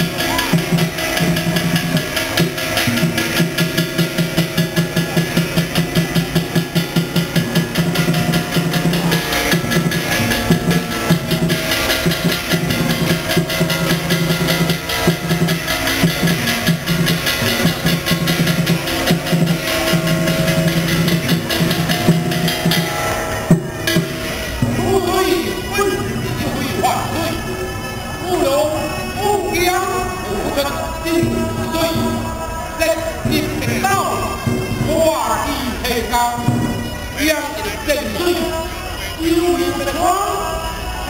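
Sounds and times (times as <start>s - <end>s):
drums beating fast: 0.0s - 40.4s
steady held tone: 0.0s - 41.0s.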